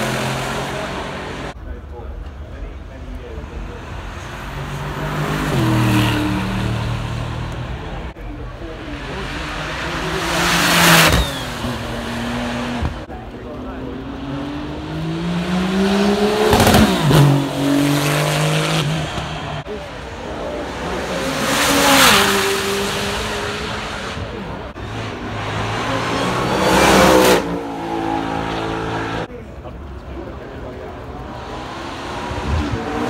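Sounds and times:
sports cars accelerating past: 13.8 - 19.6, 20.6 - 29.3.

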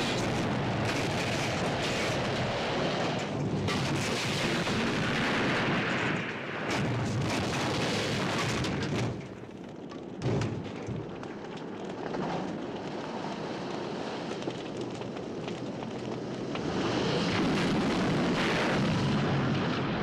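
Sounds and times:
fire flames rushing: 0.0 - 20.0
explosion blasts: 17.2 - 20.0.

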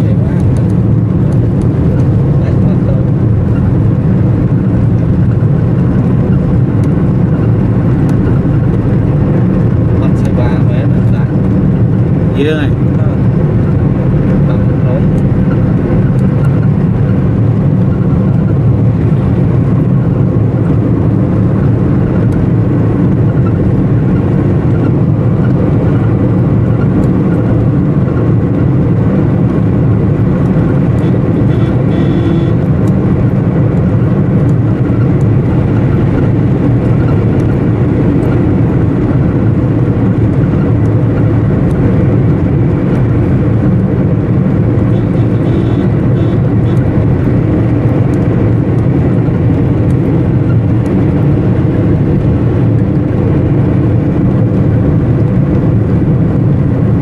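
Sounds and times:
engine and road noise inside vehicle: 0.0 - 57.0.

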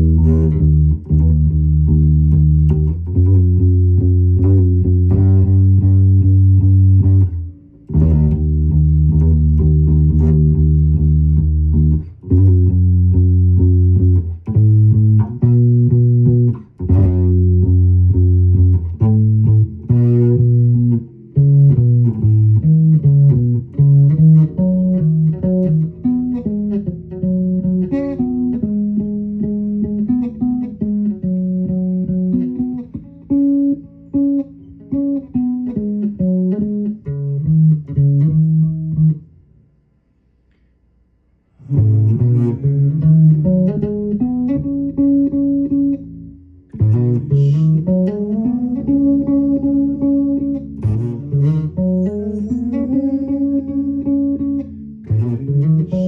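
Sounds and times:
electric bass guitar solo: 0.0 - 39.6, 41.5 - 56.0.

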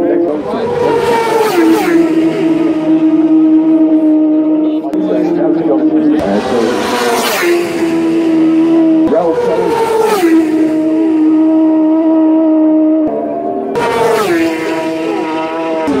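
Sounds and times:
racing motorcycle engine revving: 0.0 - 16.0.

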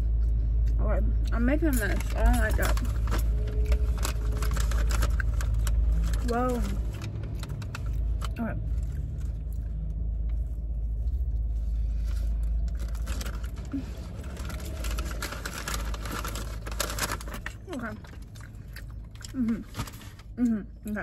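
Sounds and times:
low car rumble: 0.0 - 21.0
paper bag crinkling: 1.9 - 8.0, 12.6 - 18.6, 19.2 - 20.3
person chewing pastry: 3.6 - 20.9.

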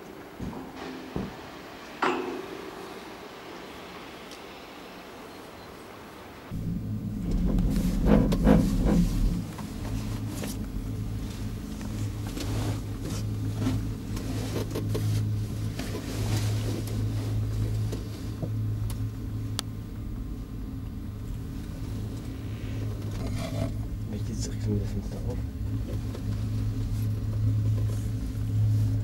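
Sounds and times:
gondola cabin low hum: 0.0 - 29.0
clattering and rumbling: 6.5 - 18.9, 21.1 - 28.7.

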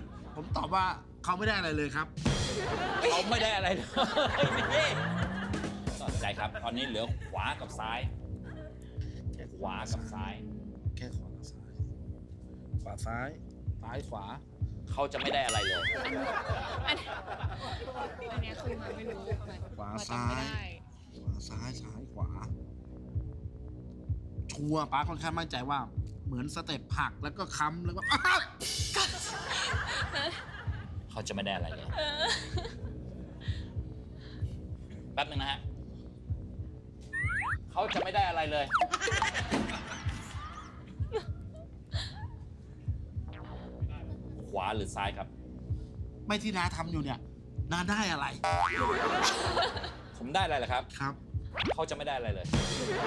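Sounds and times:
springy wobbling cartoon tone: 37.2 - 39.0.

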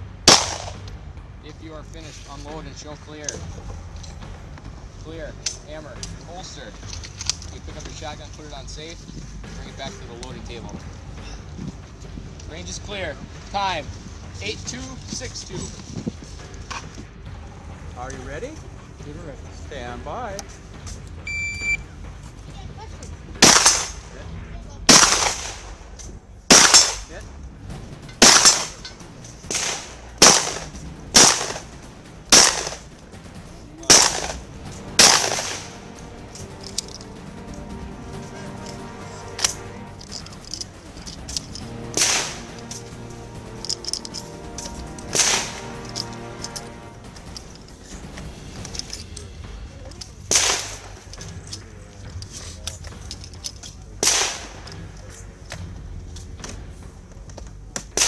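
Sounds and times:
gunshots: 0.2 - 0.9, 23.4 - 24.1, 24.9 - 25.9, 26.5 - 27.1, 28.2 - 33.0, 33.9 - 36.3, 41.5 - 46.9, 50.3 - 51.1, 54.0 - 54.8.

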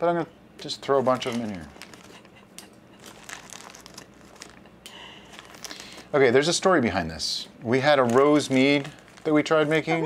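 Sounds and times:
plastic bag crinkling: 0.9 - 2.4, 3.0 - 6.3, 7.6 - 10.0.

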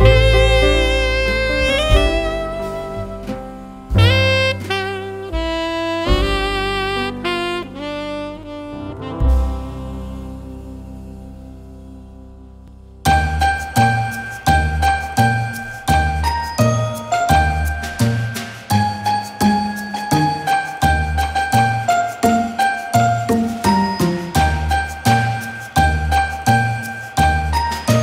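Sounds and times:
tinkling bell-like melody with beat: 13.1 - 28.0.

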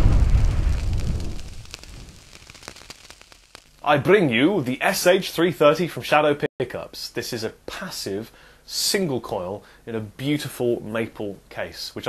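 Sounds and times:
deep boom sound effect: 0.0 - 2.2
crackles and clicks: 0.0 - 4.4.

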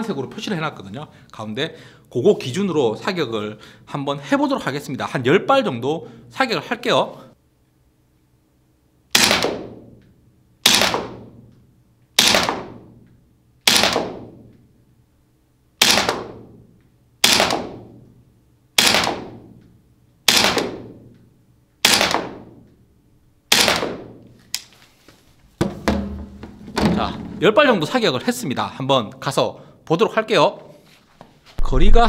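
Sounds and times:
airsoft gun shots: 9.1 - 10.0, 10.6 - 11.4, 12.2 - 13.0, 13.6 - 14.5, 15.8 - 16.6, 17.2 - 18.0, 18.8 - 19.6, 20.3 - 21.1, 21.8 - 22.6, 23.5 - 24.2.

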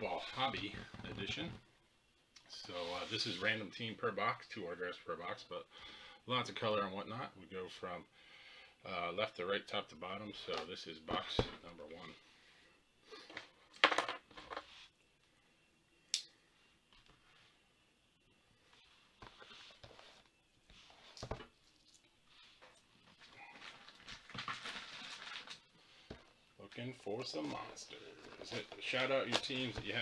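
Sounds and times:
cardboard rustling: 23.0 - 26.3, 27.2 - 30.0.

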